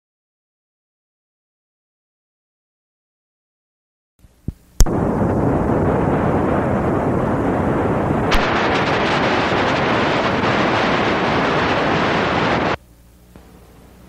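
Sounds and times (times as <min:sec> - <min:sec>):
loud static noise: 0:04.2 - 0:14.0.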